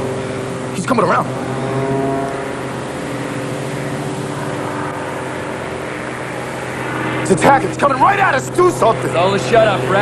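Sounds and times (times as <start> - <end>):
propeller plane engines droning: 0.0 - 10.0.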